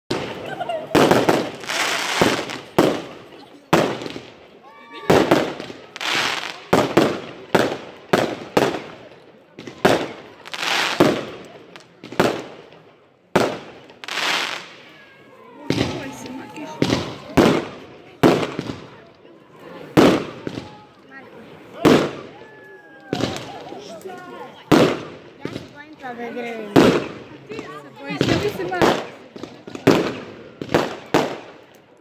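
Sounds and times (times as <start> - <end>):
fireworks bangs: 0.1 - 15.0, 15.6 - 19.2, 19.8 - 20.9, 21.7 - 24.0, 24.6 - 31.8.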